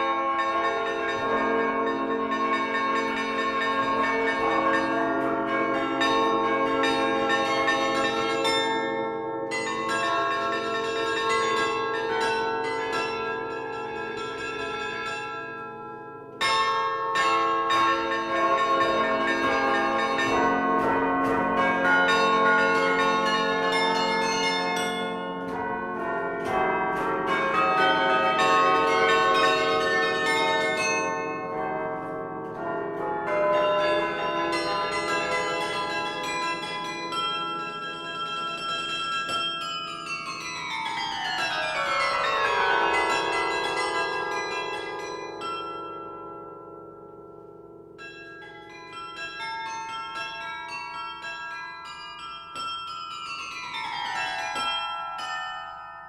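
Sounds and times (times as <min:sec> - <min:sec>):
carillon bells ringing: 0:00.0 - 0:56.0.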